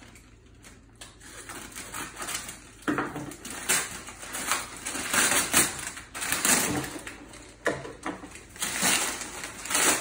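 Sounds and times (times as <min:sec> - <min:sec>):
paper bag tearing and crumpling: 0:01.1 - 0:07.6, 0:08.3 - 0:10.0.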